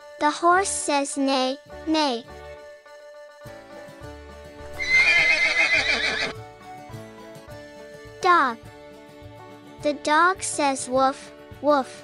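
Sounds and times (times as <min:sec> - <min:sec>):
background music: 0:00.0 - 0:12.0
horse whinnying: 0:04.8 - 0:06.4.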